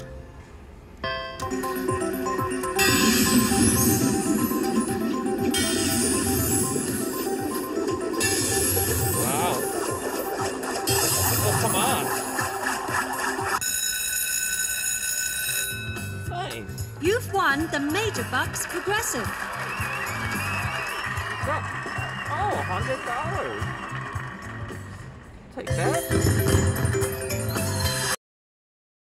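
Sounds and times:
slot machine electronic music: 1.1 - 25.0, 25.6 - 28.2
chiming win jingle: 1.2 - 12.7, 25.7 - 28.2.

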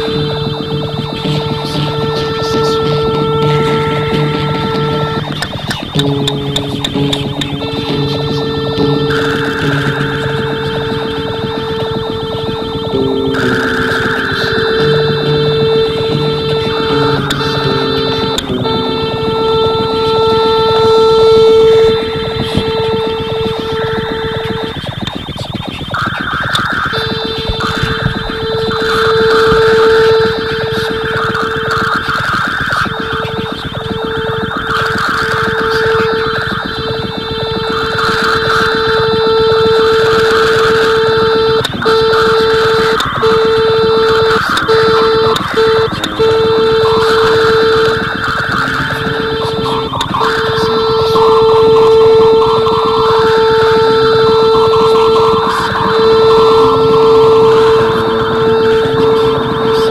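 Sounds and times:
higher steady tones: 0.0 - 59.9
loud steady electronic tone: 0.0 - 59.9.

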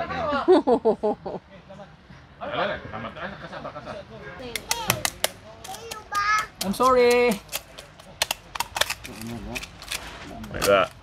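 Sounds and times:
knife cracking sea urchin shell: 4.6 - 11.0.

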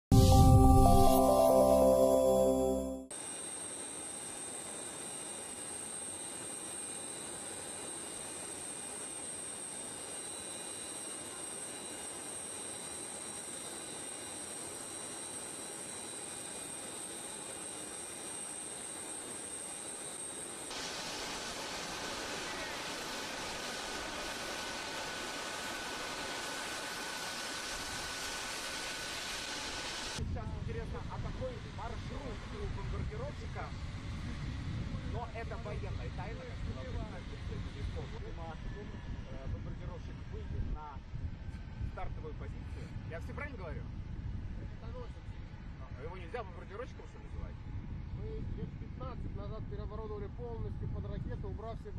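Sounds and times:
music jingle: 0.1 - 3.1
rushing hiss with high whine: 20.7 - 30.2.

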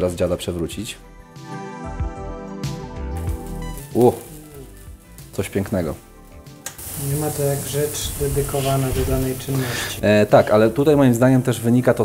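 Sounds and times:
soft background music: 0.0 - 12.0
crepe sizzling on hot plate: 3.2 - 10.9
person exclaiming: 4.0 - 4.9.

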